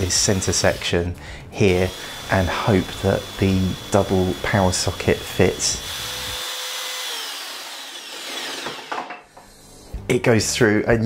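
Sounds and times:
jigsaw cutting wood: 1.8 - 9.1.

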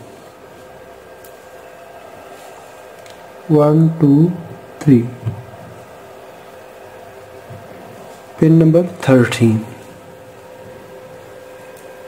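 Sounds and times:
faint hum: 0.0 - 12.0
steady background hiss: 0.0 - 12.0.

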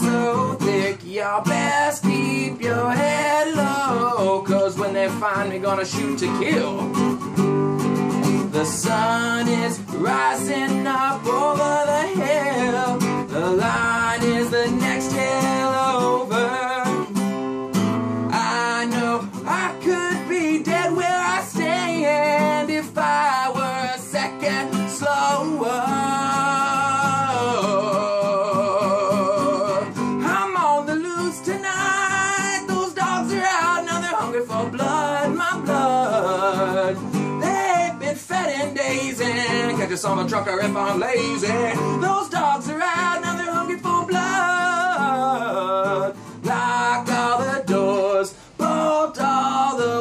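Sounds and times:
bending guitar melody: 0.0 - 50.0
strummed guitar chords: 0.0 - 50.0.

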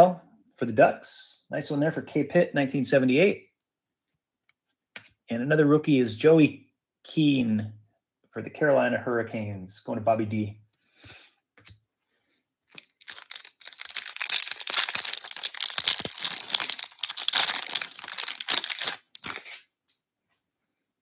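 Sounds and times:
foil wrapper tearing and crinkling: 12.7 - 19.7.

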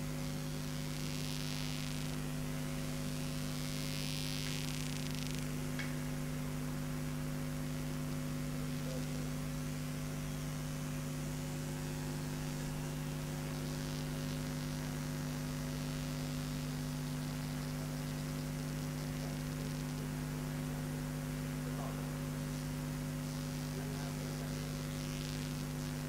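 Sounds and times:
electrical mains hum: 0.0 - 26.0
faint hiss: 0.0 - 26.0.

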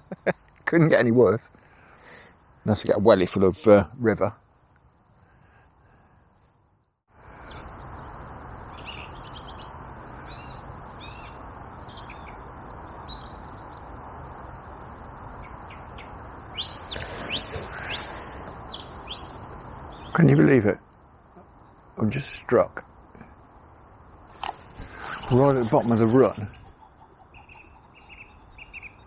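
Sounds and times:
small birds chirping: 1.5 - 29.0
steady background noise: 7.1 - 29.0
sharp rising bird calls: 15.4 - 20.4, 24.6 - 29.0.

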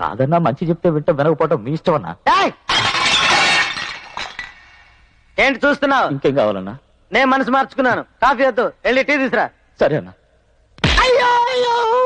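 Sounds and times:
metal tray and tumblers crashing: 2.7 - 4.8.

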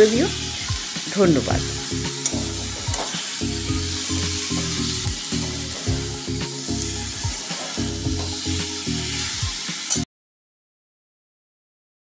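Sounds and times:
background music: 0.0 - 10.1
vegetables sizzling in a wok: 0.0 - 10.1.

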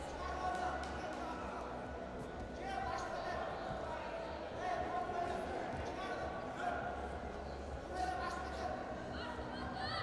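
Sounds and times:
sports hall noise: 0.0 - 10.0.

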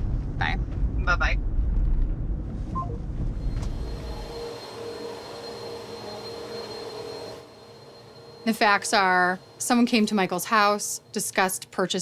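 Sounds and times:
vacuum cleaner running: 3.4 - 11.7.

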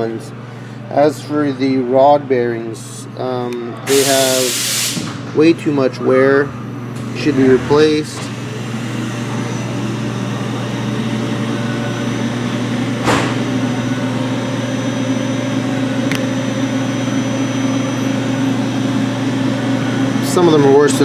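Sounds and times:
machine hum: 0.0 - 21.0.

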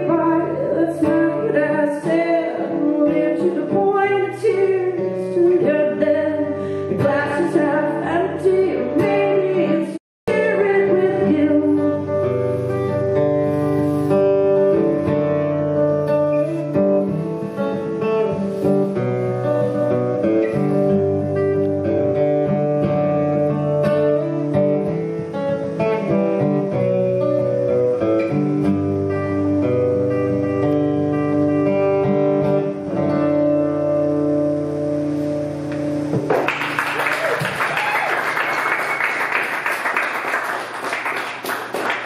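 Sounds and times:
acoustic guitar strumming: 0.0 - 36.8.

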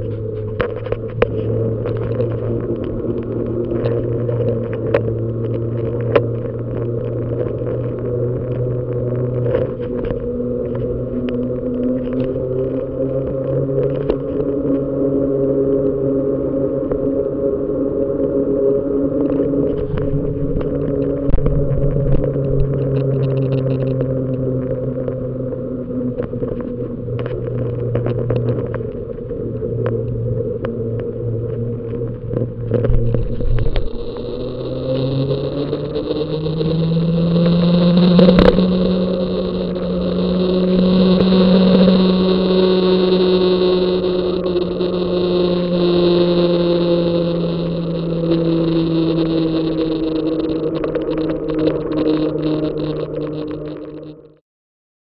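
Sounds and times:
bicycle riding hum on asphalt: 0.0 - 54.4.

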